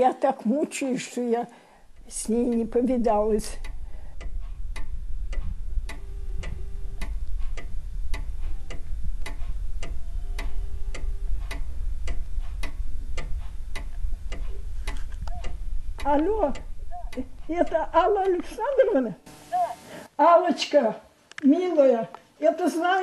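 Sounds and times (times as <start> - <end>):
mechanical clock ticking: 1.8 - 19.2.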